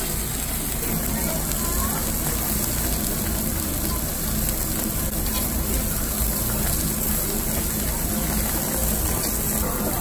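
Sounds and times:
gas burner rushing: 0:00.0 - 0:10.0
meat sizzling on a grill: 0:00.0 - 0:10.0.

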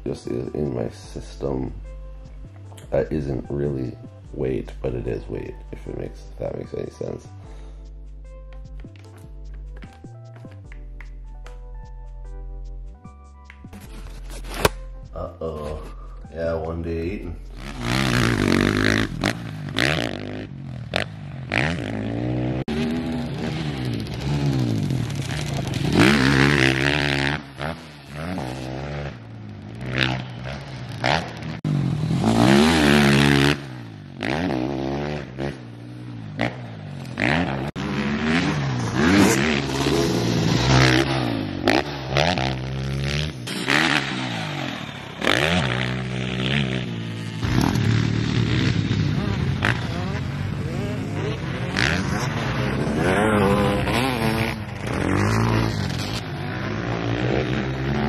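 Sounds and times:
dirt bike engine revving: 0:16.9 - 0:58.0.

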